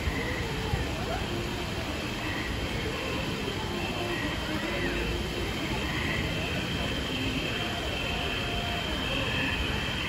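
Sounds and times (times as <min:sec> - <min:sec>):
crowd chatter: 0:00.0 - 0:10.0
street traffic: 0:00.0 - 0:10.0
waterfall cascading: 0:00.0 - 0:10.0.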